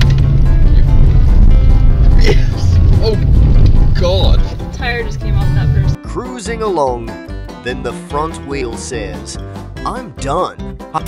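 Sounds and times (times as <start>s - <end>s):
car engine and road noise: 0.0s - 6.0s
background music: 0.0s - 11.0s.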